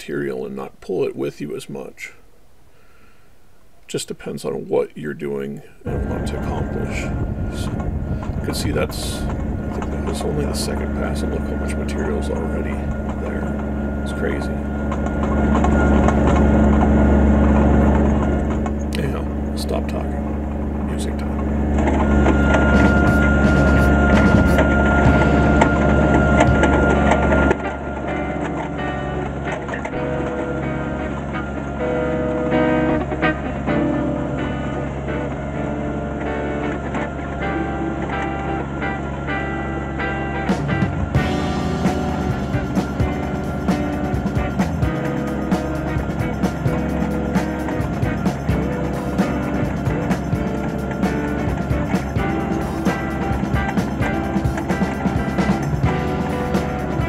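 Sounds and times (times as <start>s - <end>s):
diesel tractor engine running: 5.8s - 39.2s, 40.4s - 57.0s
background music: 5.9s - 57.0s.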